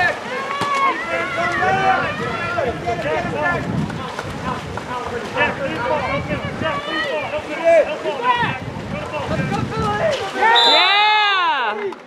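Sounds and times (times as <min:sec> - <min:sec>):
people shouting: 0:00.0 - 0:03.6, 0:05.4 - 0:08.6, 0:09.9 - 0:11.8
water splashing: 0:00.0 - 0:12.0
wind noise on microphone: 0:01.1 - 0:07.5, 0:08.3 - 0:10.3.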